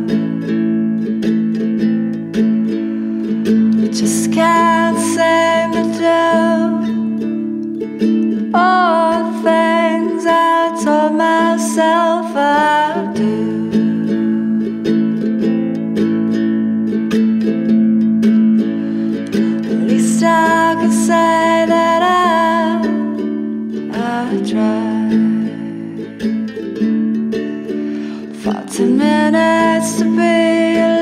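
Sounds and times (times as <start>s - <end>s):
woman singing: 0.0s - 1.2s, 2.7s - 15.4s, 19.1s - 27.0s, 27.8s - 31.0s.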